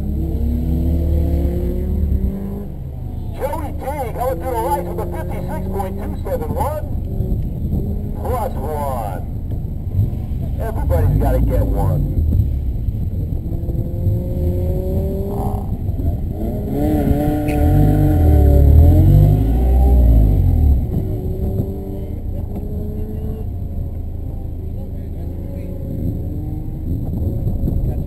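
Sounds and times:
car engine idling and revving: 0.0 - 28.0.

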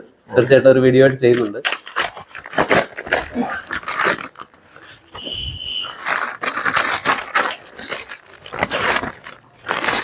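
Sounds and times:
newspaper rustling: 1.6 - 10.0
high steady whine: 5.1 - 6.0.

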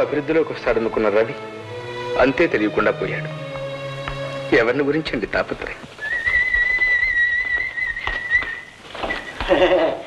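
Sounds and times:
person whistling a long note: 6.0 - 8.7.

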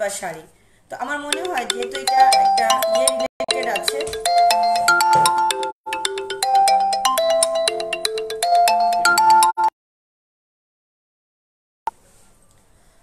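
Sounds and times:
phone ringtone melody: 1.2 - 9.8.

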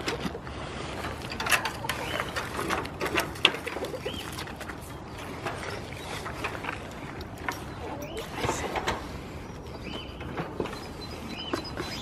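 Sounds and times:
small bird chirping: 7.0 - 8.4.

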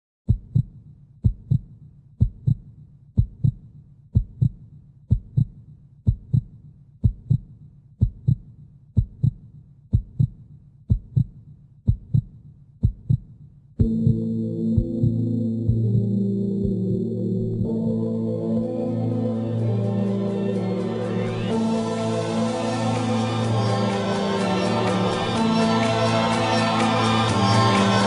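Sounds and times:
heartbeat thumps: 0.3 - 17.7
music bed: 14.8 - 28.0.

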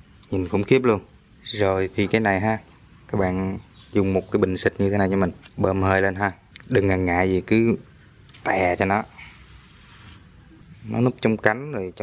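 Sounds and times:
pressure sprayer hissing: 8.7 - 10.4.

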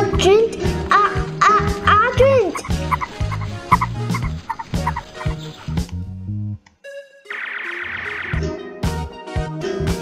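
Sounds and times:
background music beat: 0.0 - 10.0.

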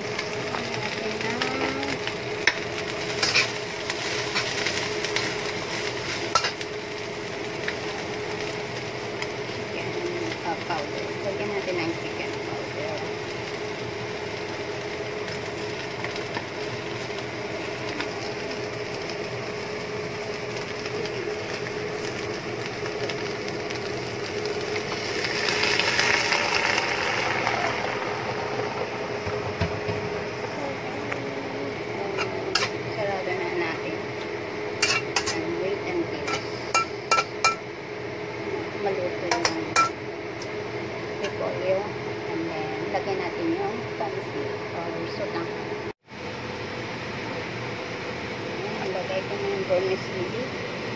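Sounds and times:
lettuce sizzling in a wok: 0.0 - 45.4, 46.0 - 50.9.

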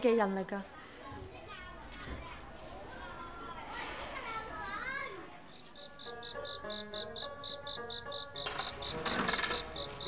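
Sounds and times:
children calling at play: 0.8 - 8.2.

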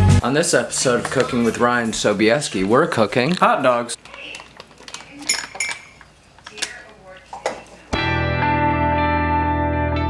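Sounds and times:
knife and cutlery clinking: 4.1 - 6.7.

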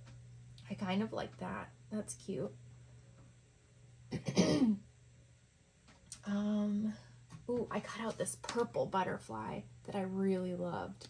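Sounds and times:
woman coughing: 4.1 - 4.8.

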